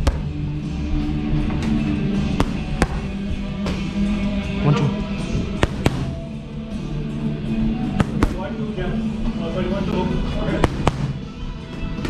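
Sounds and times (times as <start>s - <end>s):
background music: 0.0s - 12.0s
boxing gloves smacking pads: 2.3s - 3.8s, 5.6s - 6.3s, 7.9s - 8.4s, 10.6s - 11.2s.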